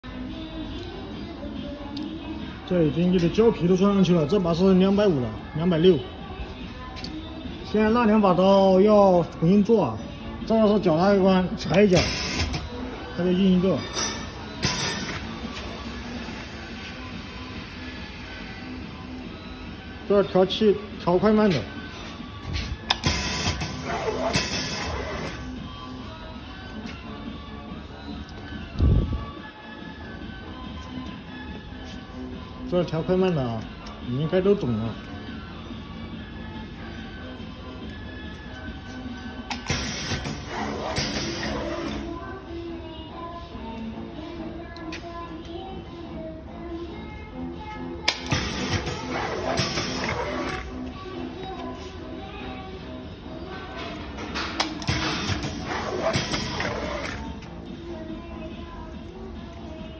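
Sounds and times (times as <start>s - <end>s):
background music: 0.0s - 59.9s
pneumatic air hiss: 11.9s - 12.9s, 14.0s - 17.0s, 22.6s - 25.5s, 39.5s - 42.1s, 48.2s - 50.7s, 54.8s - 57.4s.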